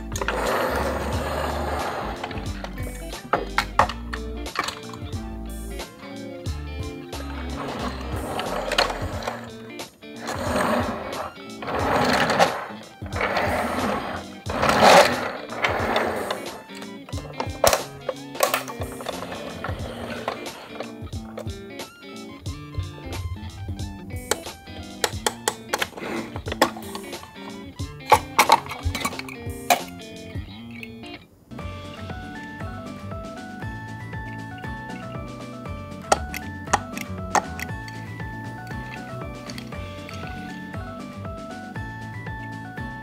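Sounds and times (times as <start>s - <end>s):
toy car scraping and rattling: 0.0s - 5.1s, 7.2s - 21.6s, 24.3s - 30.0s, 38.9s - 40.6s
background music: 0.0s - 43.0s.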